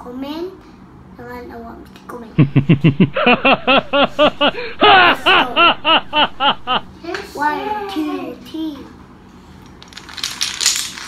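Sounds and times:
dominoes toppling clicks: 0:09.8 - 0:11.0.

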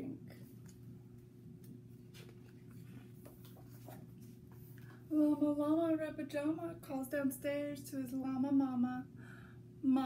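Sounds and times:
low steady hum: 0:00.0 - 0:10.0
paper pages rustling: 0:02.0 - 0:05.0.

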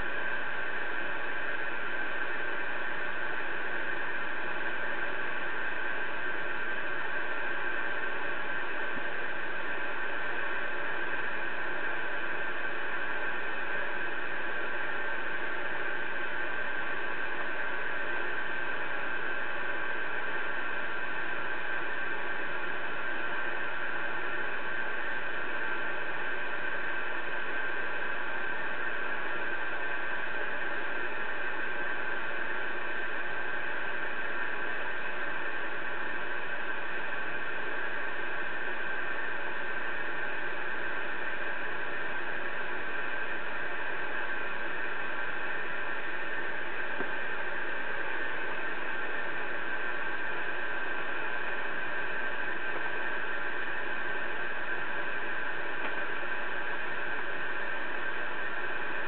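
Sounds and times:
radio static hiss: 0:00.0 - 0:59.0.

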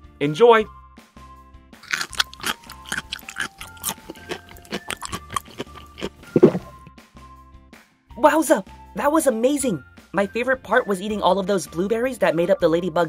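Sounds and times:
light background music: 0:00.0 - 0:13.0
crunchy biting and chewing: 0:01.8 - 0:06.9.

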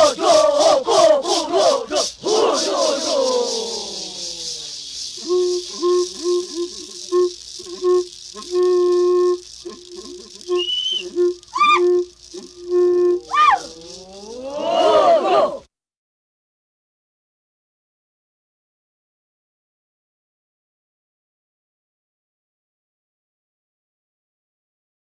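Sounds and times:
voices chanting together: 0:00.0 - 0:06.8, 0:13.3 - 0:15.7
high rising yelps: 0:00.0 - 0:07.8, 0:09.6 - 0:12.6, 0:13.2 - 0:15.6
person chanting: 0:00.0 - 0:07.8, 0:12.3 - 0:15.7
rattles shaken: 0:00.0 - 0:15.0.

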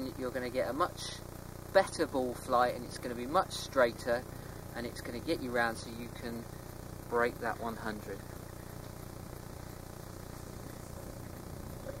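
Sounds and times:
faint hiss: 0:00.0 - 0:12.0
steady low hum: 0:00.0 - 0:12.0.

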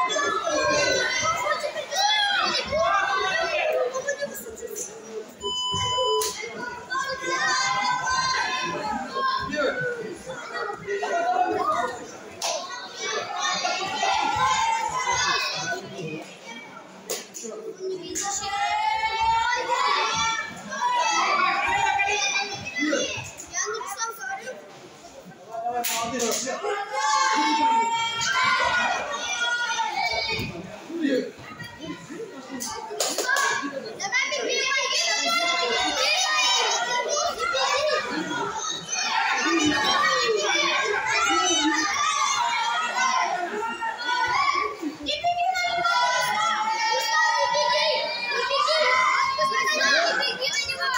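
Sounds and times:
children shouting: 0:00.0 - 0:04.4, 0:05.4 - 0:24.4, 0:25.7 - 0:50.9.

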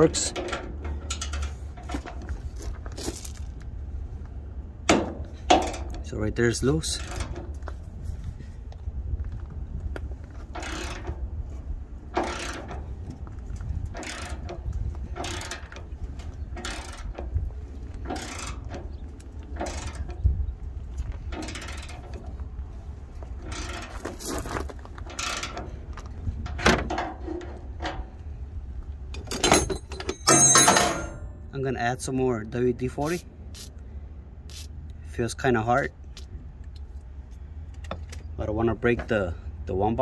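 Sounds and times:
metal clatter: 0:29.1 - 0:31.5.

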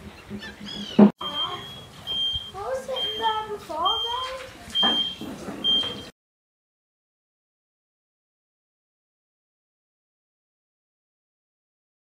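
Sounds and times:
short high electronic beep: 0:01.2 - 0:03.3.

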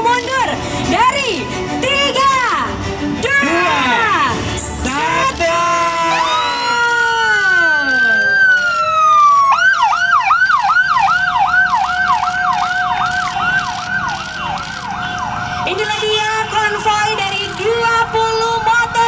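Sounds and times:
motorcycle siren wailing and yelping: 0:06.1 - 0:19.0
steady siren tone: 0:06.2 - 0:16.1.

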